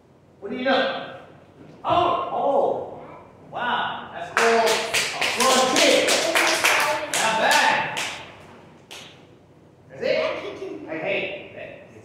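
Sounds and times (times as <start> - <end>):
hand claps: 4.4 - 8.3, 8.9 - 9.2
children's voices: 10.1 - 10.9.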